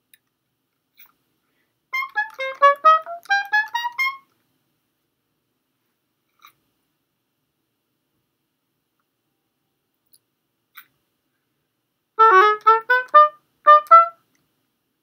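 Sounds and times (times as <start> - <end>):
oboe playing short notes: 2.0 - 4.2, 12.2 - 14.2.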